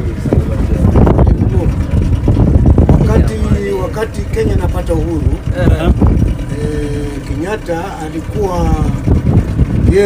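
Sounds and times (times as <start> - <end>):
men talking: 0.0 - 10.0
outboard motor rumbling: 0.0 - 10.0.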